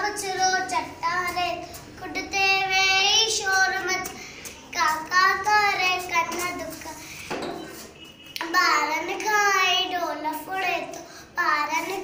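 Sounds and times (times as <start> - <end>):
girl singing unaccompanied: 0.0 - 7.3, 8.4 - 12.0.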